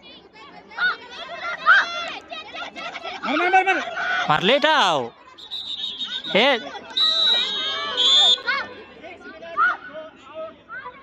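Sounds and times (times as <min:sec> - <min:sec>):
people shouting calls: 0:03.3 - 0:05.1, 0:05.8 - 0:08.7
whistle blast: 0:05.4 - 0:08.5.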